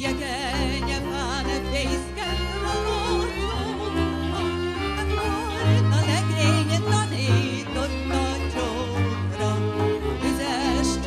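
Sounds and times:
double bass: 0.0s - 11.0s
violin melody with vibrato: 0.0s - 11.0s.

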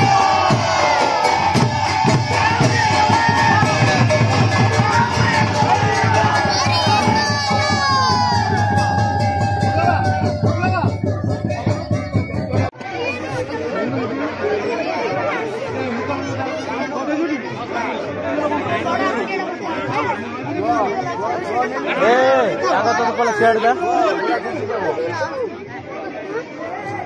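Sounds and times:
crowd chatter: 0.0s - 27.0s.

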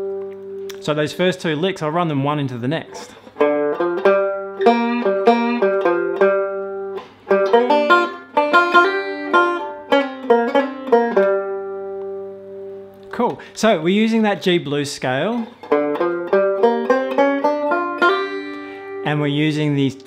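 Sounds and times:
banjo playing blues licks: 0.0s - 0.9s, 2.8s - 19.5s.

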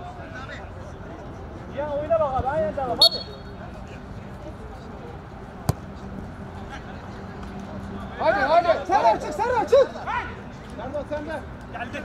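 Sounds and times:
referee's whistle blast: 3.0s - 3.5s
football kick: 5.6s - 5.9s.

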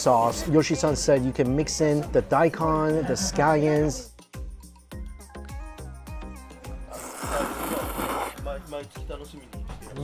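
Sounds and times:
background music with steady beat: 0.0s - 10.0s
person slurping noodles: 6.9s - 8.4s.

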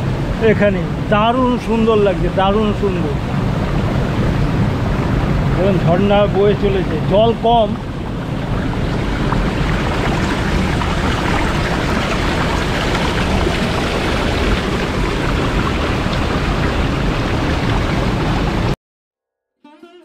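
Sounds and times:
river water rushing through rocks: 0.0s - 18.8s.

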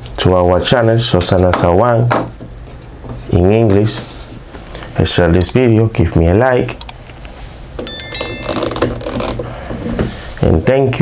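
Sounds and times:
short high chime: 7.9s - 9.2s.

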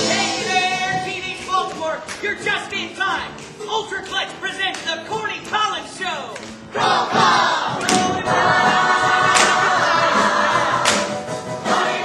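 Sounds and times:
group of voices singing: 0.0s - 0.8s, 6.7s - 12.0s
musical accompaniment: 0.0s - 12.0s.

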